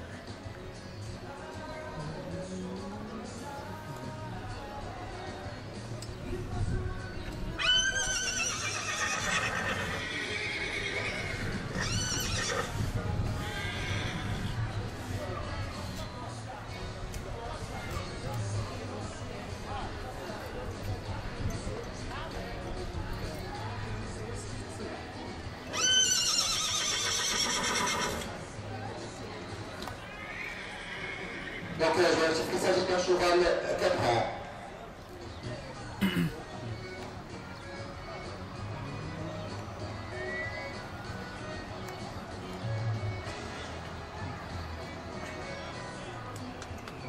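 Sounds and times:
horse whinnying: 7.6s - 14.6s, 25.7s - 28.4s, 30.0s - 31.8s.

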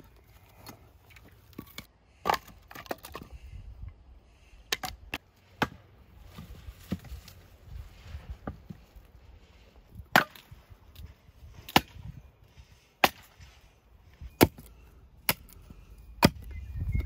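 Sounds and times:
axe chopping wood: 1.5s - 3.3s, 4.7s - 6.0s, 10.0s - 10.6s, 11.6s - 12.2s, 13.0s - 13.5s, 14.2s - 16.6s.

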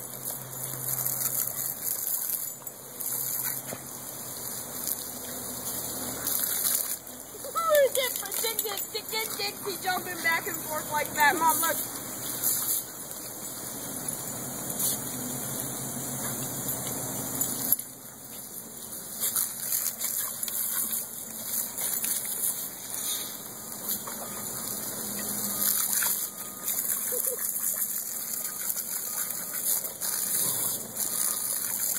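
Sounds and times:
hose water spraying on ground: 0.0s - 31.9s.

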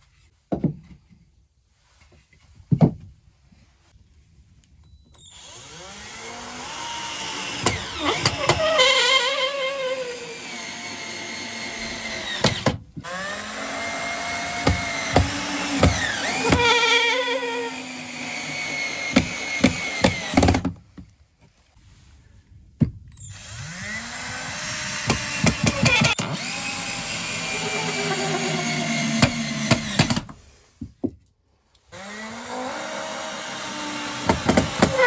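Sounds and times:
drill driving screws into wood: 5.2s - 20.8s, 23.2s - 30.4s, 31.9s - 35.0s.

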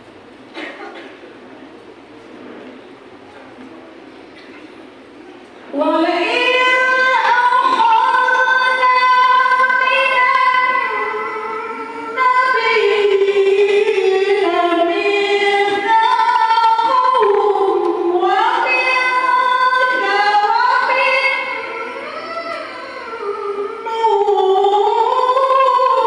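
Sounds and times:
woman reciting melodically: 5.7s - 26.0s.

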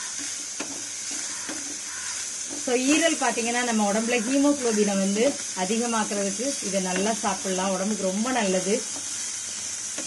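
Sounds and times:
spatula scraping pan: 0.0s - 5.0s
meat and onion sizzling in pan: 0.0s - 10.0s.

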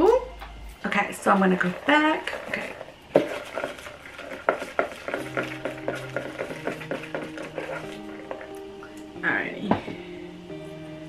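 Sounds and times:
paper slips rattling in cup: 1.5s - 8.5s.

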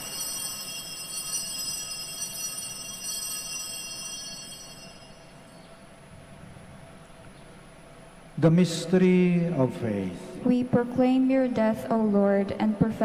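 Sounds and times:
small bells ringing: 0.0s - 5.9s.

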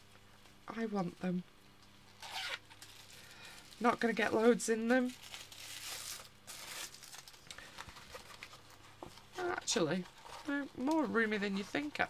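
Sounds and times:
plastic pencil case crinkling: 2.3s - 12.0s.

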